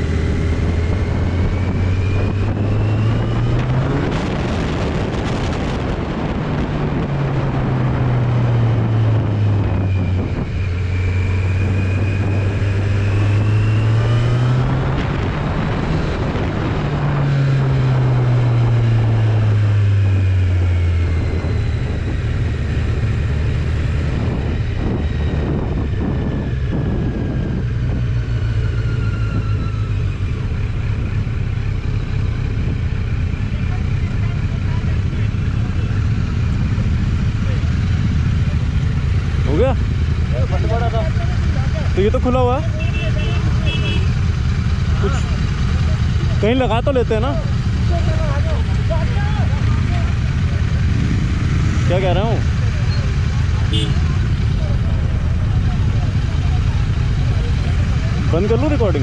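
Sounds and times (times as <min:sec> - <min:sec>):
motorcycle engine running: 0:00.0 - 0:59.0
road and wind rush: 0:00.0 - 0:59.0.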